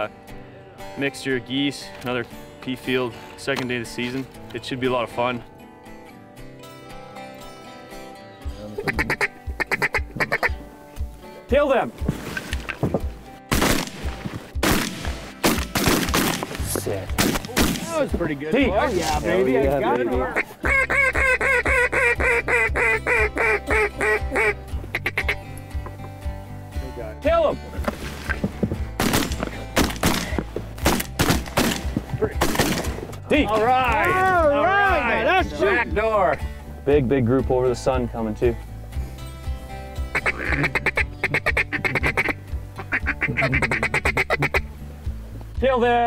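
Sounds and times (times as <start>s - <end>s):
background music: 0.0s - 46.0s
duck quacks: 8.8s - 10.6s, 20.3s - 25.4s, 40.1s - 44.7s.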